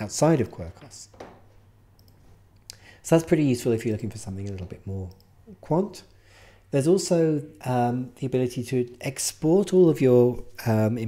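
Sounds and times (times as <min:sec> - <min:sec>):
computer mouse click: 0:02.0 - 0:02.8.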